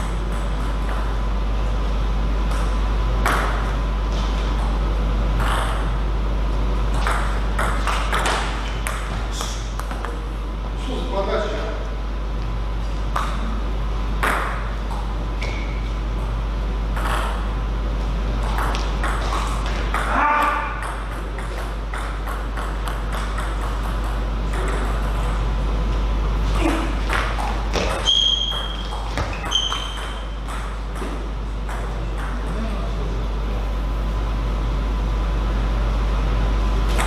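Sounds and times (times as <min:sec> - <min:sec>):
steady low hum: 0:00.0 - 0:37.0
short high squeaks: 0:28.0 - 0:30.2.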